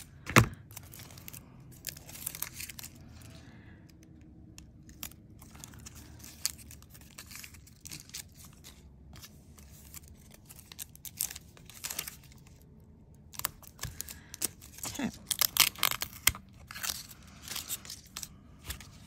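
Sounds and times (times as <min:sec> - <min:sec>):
foil tape crinkling: 0:00.0 - 0:03.8, 0:04.5 - 0:19.0.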